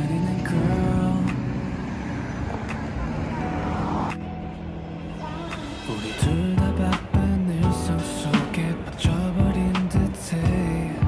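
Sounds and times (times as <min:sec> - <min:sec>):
cars passing: 0:00.0 - 0:11.0
soft background music: 0:00.0 - 0:11.0.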